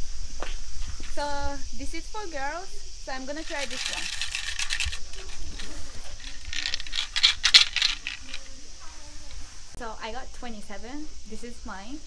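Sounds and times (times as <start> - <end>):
sticks rattling in shaken box: 3.3 - 8.6.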